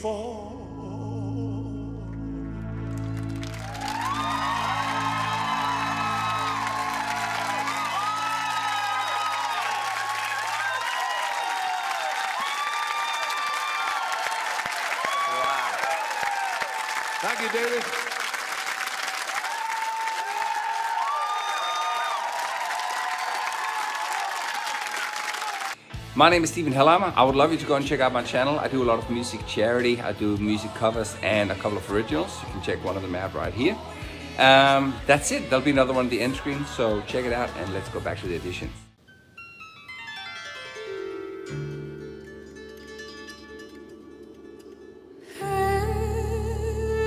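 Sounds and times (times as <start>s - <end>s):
audience applauding and cheering: 2.5s - 25.8s.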